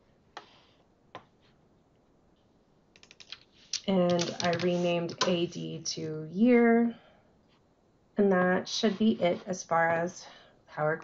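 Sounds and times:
keyboard and mouse clicks: 3.0s - 5.5s.

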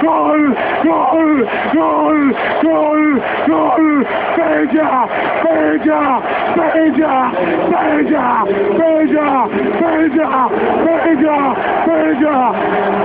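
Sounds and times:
man shouting goal call: 0.0s - 12.7s.

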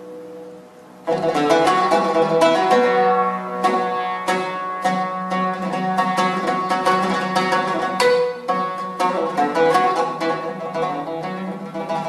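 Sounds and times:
oud plucked notes: 0.0s - 12.0s.

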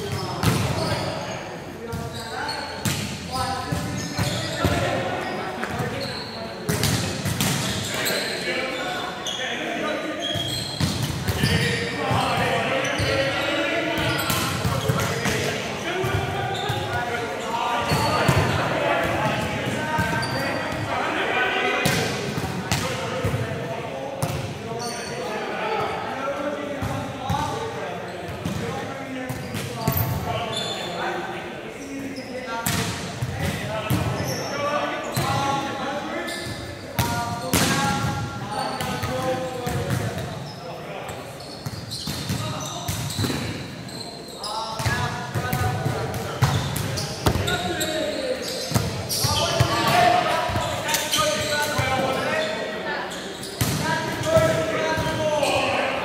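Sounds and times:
players calling and chattering: 0.0s - 56.0s
volleyballs struck and bouncing: 44.8s - 47.7s.

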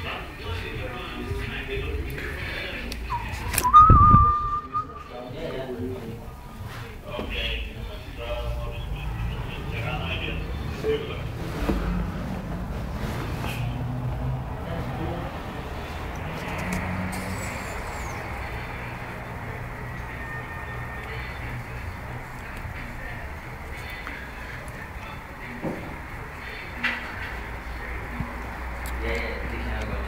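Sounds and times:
city traffic rumble: 0.0s - 30.0s
whistled note: 3.1s - 5.4s.

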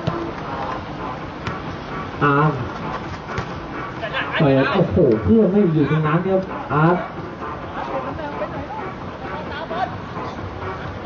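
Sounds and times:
football being kicked: 0.0s - 0.3s, 1.4s - 1.6s
outdoor background noise: 0.0s - 11.0s.

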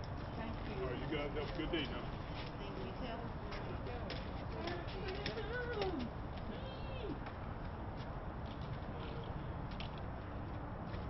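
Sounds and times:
light clicks or footsteps: 3.5s - 6.5s, 7.2s - 11.0s.

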